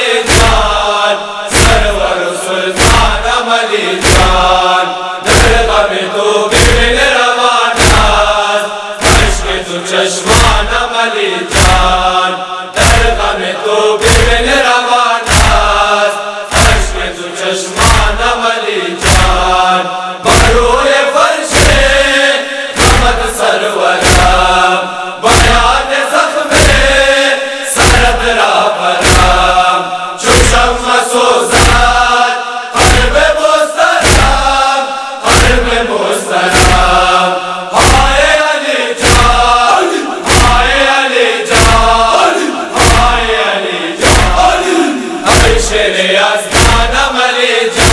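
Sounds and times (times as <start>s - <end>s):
person chanting a lament: 0.0s - 47.9s
deep even drum beat: 2.8s - 3.3s, 7.8s - 8.3s, 9.0s - 9.6s, 11.5s - 12.0s, 15.3s - 15.8s, 17.8s - 18.3s, 19.0s - 19.5s, 24.0s - 24.5s, 36.5s - 37.0s, 40.3s - 40.7s, 42.8s - 43.2s, 44.0s - 44.5s, 46.5s - 47.0s.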